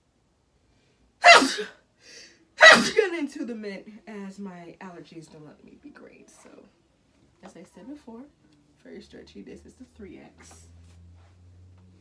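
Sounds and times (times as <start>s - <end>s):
woman sneezing: 1.2s - 1.8s, 2.6s - 3.1s.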